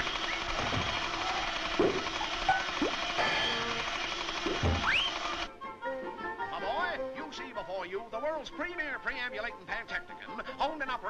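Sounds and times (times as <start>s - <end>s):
mechanical clatter and ratcheting: 0.0s - 5.5s
music: 4.6s - 11.0s
rising whistle: 4.8s - 5.2s.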